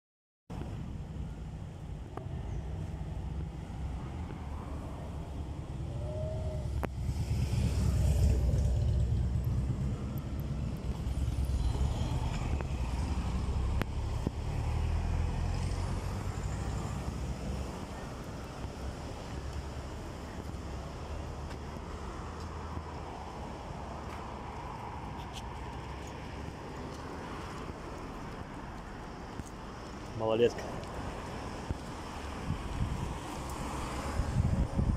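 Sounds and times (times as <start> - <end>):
low traffic hum: 0.5 - 34.9
cars passing: 0.6 - 34.9.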